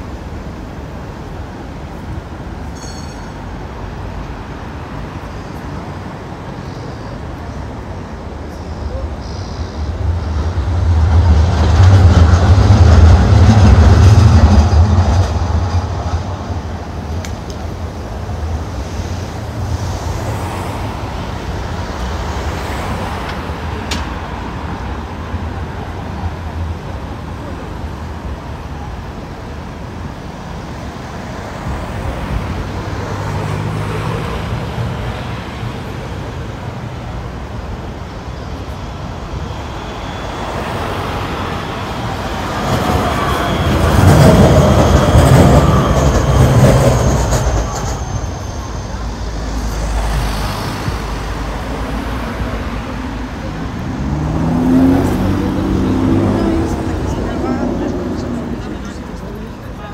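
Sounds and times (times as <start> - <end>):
cars passing: 0.0 - 59.9
tram passing with whine: 0.0 - 59.9
passersby voices: 30.8 - 59.9.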